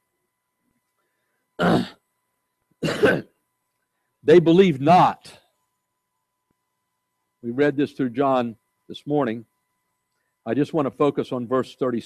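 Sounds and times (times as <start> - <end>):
man clearing his throat: 1.6 - 2.0, 2.8 - 3.3.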